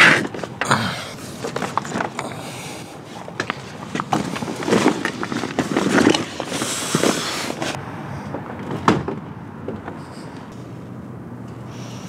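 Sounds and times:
clicks and rustling: 0.0s - 2.4s, 3.1s - 10.6s.

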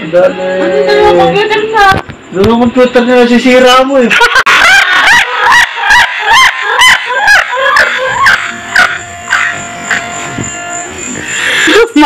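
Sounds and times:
chicken clucking loudly: 4.1s - 10.2s.

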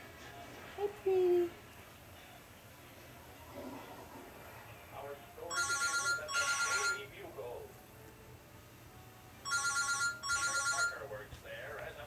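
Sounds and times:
electronic telephone ringer trilling: 5.5s - 7.0s, 9.5s - 11.0s.

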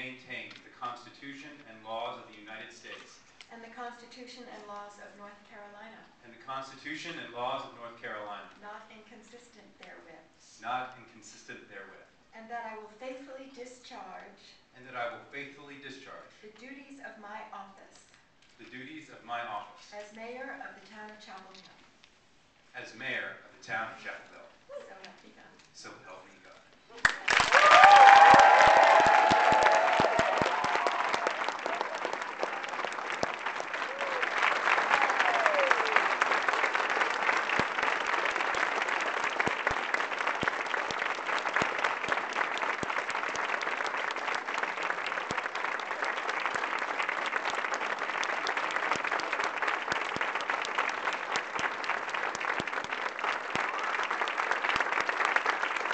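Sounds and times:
audience applauding: 27.0s - 55.9s.

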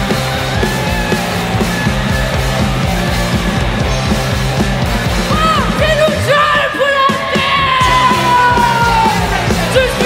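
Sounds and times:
punk rock band playing: 0.0s - 10.0s.

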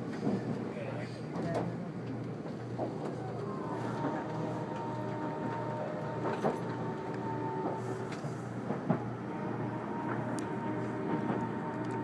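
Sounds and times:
faint train whine: 0.0s - 12.0s
train cabin rumble: 0.0s - 12.0s.

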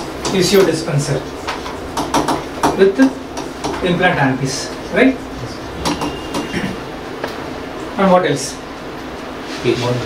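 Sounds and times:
low rumbling room noise: 0.0s - 10.0s.

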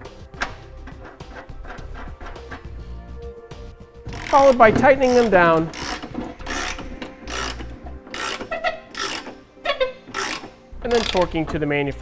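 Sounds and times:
ratchet wrench clicking: 4.1s - 11.5s.

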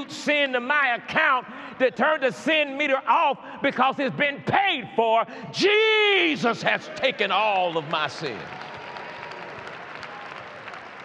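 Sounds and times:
crowd applauding: 6.8s - 11.0s.

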